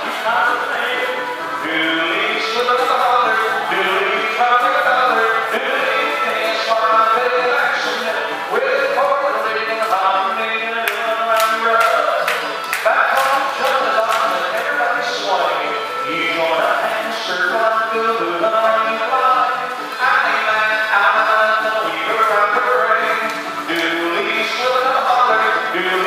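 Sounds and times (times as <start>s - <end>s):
upbeat dance music: 0.0s - 26.0s.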